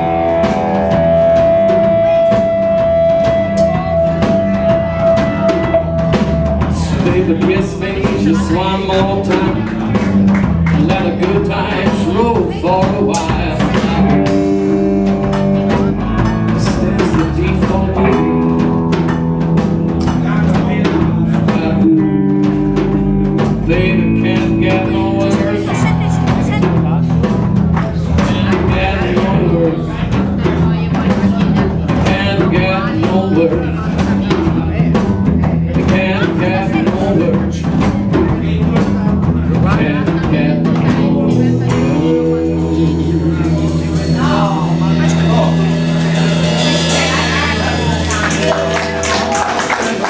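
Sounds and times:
electric guitar lines: 0.0 - 12.2, 13.0 - 28.6, 40.0 - 50.0
drum kit steady beat: 0.0 - 50.0
electric bass: 0.0 - 50.0.

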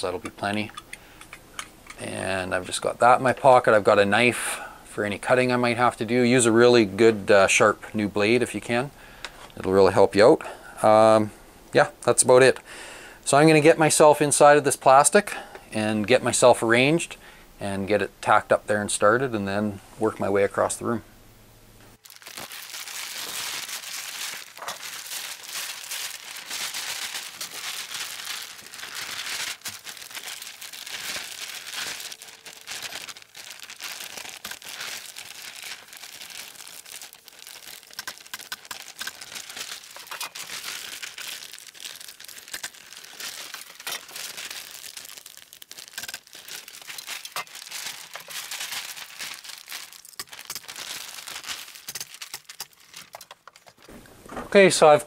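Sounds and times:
plastic sheet crinkling: 22.0 - 53.9.

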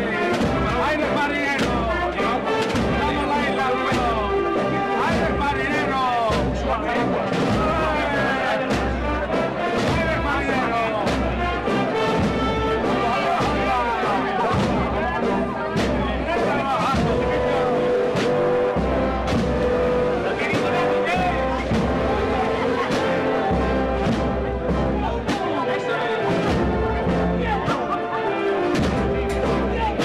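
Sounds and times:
drum beats: 0.0 - 30.0
wind band playing a march: 0.0 - 30.0.

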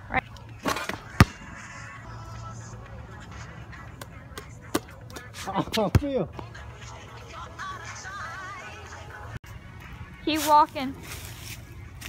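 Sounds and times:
scuffing rustle: 10.3 - 12.0.

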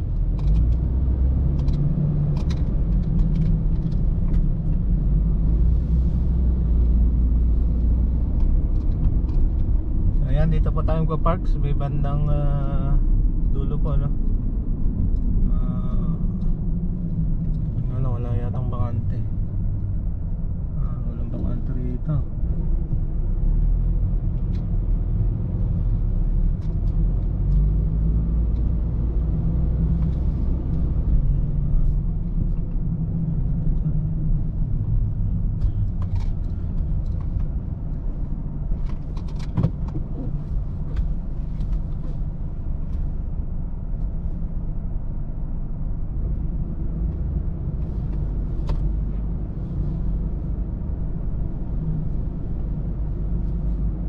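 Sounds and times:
car engine and tyre rumble: 0.0 - 54.0.

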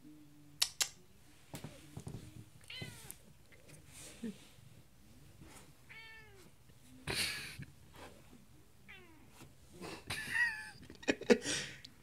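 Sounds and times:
cat meowing: 2.6 - 3.2, 5.9 - 6.4.

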